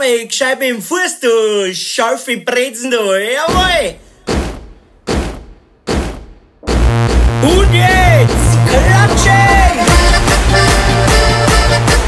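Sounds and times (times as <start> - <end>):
heavy boot stomps echoing: 3.5 - 7.6.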